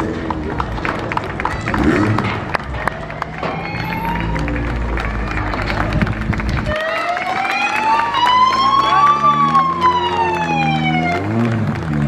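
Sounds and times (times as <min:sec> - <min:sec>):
siren wailing: 0:03.0 - 0:05.8, 0:06.6 - 0:11.4.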